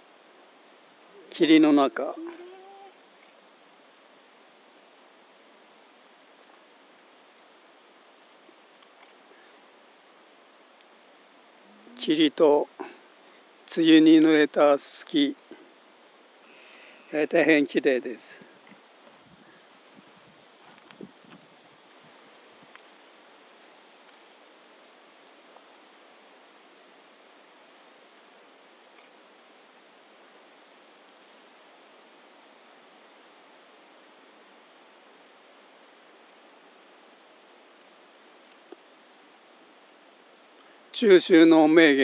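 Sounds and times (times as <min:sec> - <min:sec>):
outdoor ambient hiss: 0:00.0 - 0:42.0
faint high chirps: 0:11.4 - 0:13.0.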